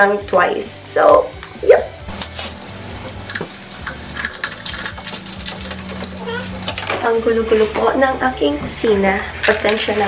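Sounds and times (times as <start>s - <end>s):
packet crinkling: 2.1s - 6.9s
scissors snipping sachet: 2.1s - 6.9s.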